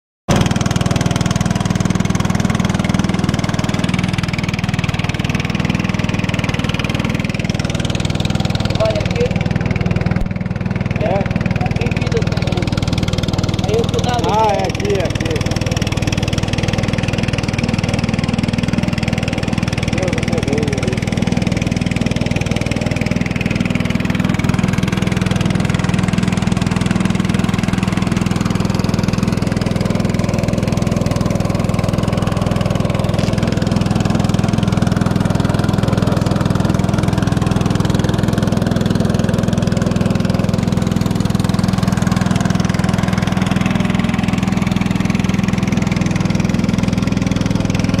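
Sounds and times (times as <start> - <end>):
boat motor droning: 0.3 - 48.0
water rushing past hull: 0.3 - 48.0.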